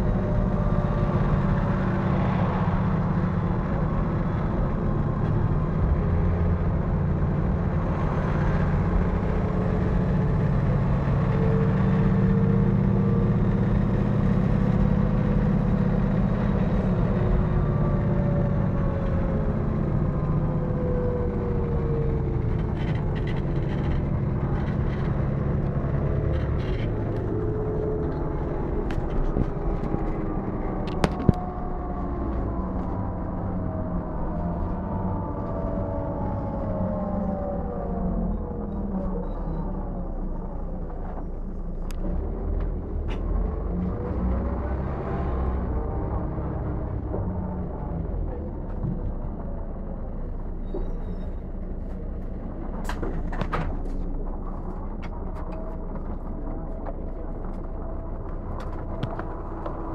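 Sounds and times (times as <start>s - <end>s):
bus diesel engine and road rumble: 0.0s - 59.9s
whining drivetrain: 0.0s - 59.9s.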